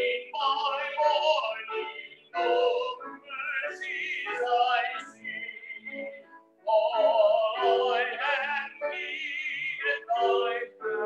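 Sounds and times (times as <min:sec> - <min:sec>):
man singing long held notes: 0:00.0 - 0:11.0.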